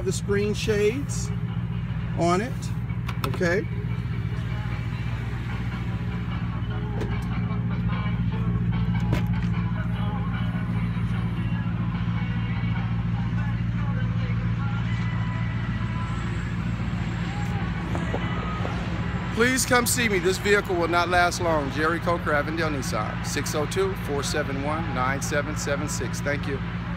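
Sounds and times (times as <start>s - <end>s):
vehicle engine idling: 0.0s - 26.9s.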